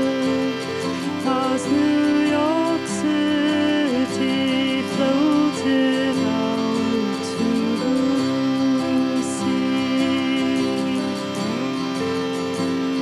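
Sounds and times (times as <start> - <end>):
acoustic guitar sliding notes: 0.0 - 13.0.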